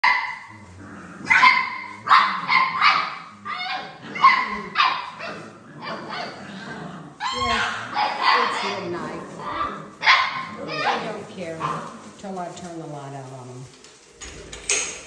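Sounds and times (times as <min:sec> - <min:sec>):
puppies barking: 0:00.0 - 0:12.2.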